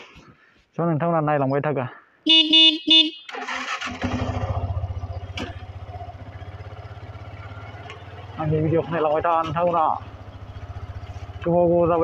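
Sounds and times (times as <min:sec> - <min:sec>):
motorcycle horn beeping: 0:02.3 - 0:03.8
motorcycle engine starting and running: 0:03.3 - 0:12.0.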